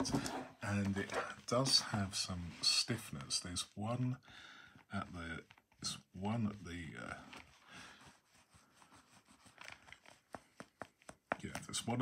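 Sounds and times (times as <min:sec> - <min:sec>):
leather binder rustling: 0:08.6 - 0:11.8.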